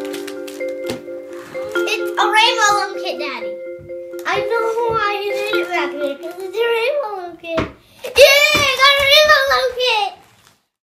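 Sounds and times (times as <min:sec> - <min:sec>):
child's sing-song voice: 0:01.8 - 0:03.5, 0:04.2 - 0:10.2.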